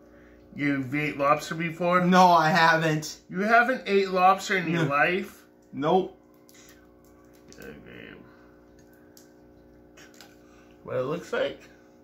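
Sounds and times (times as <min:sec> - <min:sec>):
faint steady hum: 0:00.0 - 0:12.0
man speaking: 0:00.6 - 0:06.2.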